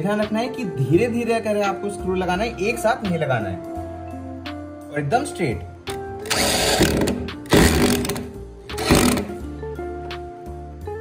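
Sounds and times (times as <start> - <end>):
background music: 0.0 - 11.0
electric drill driving screws: 6.2 - 9.4.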